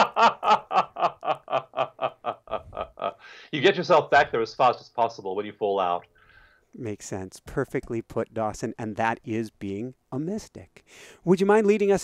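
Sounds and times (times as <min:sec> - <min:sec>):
man laughing: 0:00.0 - 0:03.3.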